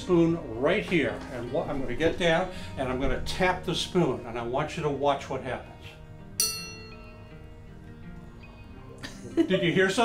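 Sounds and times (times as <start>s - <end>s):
hanging spoon ringing: 6.4s - 7.2s.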